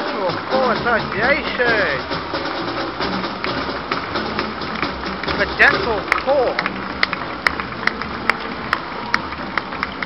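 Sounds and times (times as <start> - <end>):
crowd hum: 0.0 - 10.0
marching drum taps: 0.4 - 10.0.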